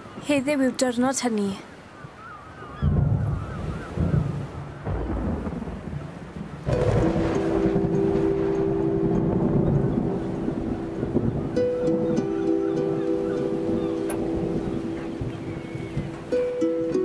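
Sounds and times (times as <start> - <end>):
deep thunder-like rumble: 2.8 - 12.3
film score of low held notes: 6.7 - 17.0.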